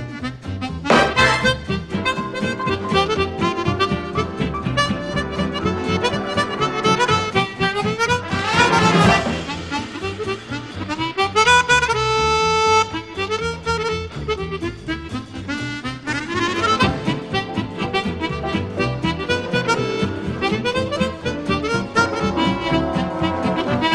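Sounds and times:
chromatic harmonica playing jazz: 0:00.0 - 0:23.9
band accompaniment: 0:00.2 - 0:23.9.

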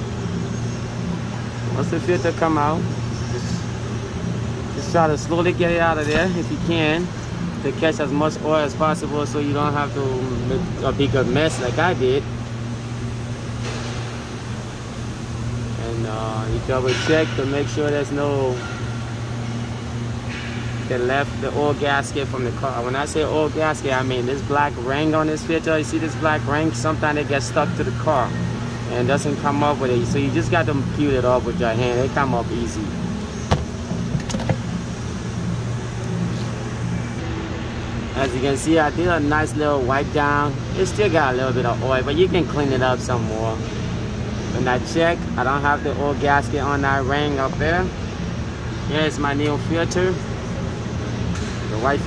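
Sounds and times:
low machine hum with hiss: 0:00.0 - 0:52.0.

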